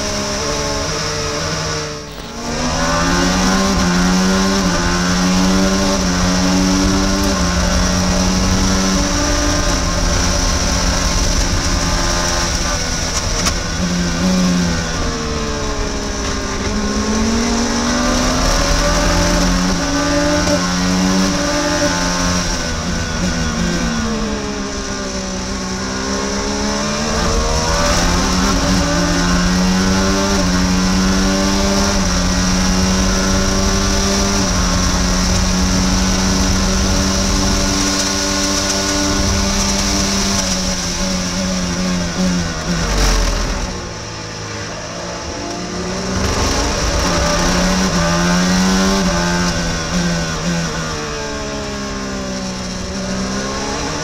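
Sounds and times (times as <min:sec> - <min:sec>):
racing car engine with gearshifts: 0:00.0 - 0:54.0.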